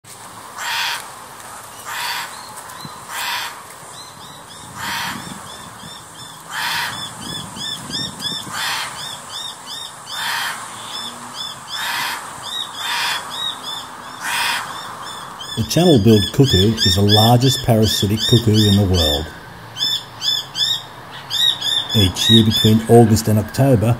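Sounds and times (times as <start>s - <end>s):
cuckoo screaming calls: 1.7s - 23.9s
small bird chirping rapidly: 19.8s - 22.9s.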